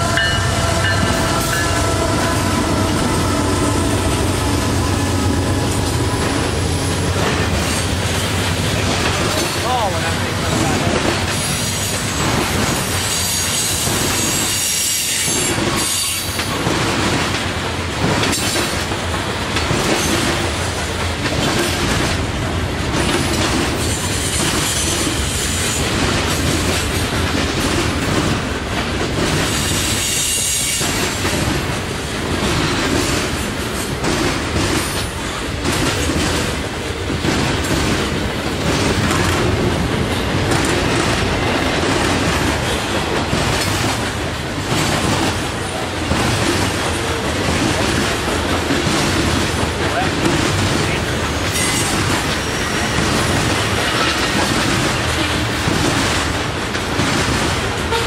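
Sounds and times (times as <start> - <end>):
steel wheels rumbling on rail: 0.0 - 58.0
wheels clacking over rail joints: 0.0 - 58.0.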